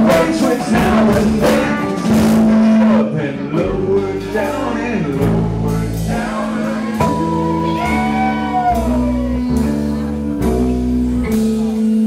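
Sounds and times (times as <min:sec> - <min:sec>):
live blues rock band: 0:00.0 - 0:12.0.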